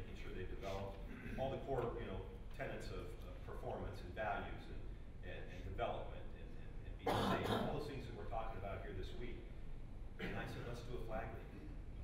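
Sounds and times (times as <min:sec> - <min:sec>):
man clearing throat: 0:01.1 - 0:01.5, 0:07.1 - 0:07.8, 0:10.2 - 0:10.7.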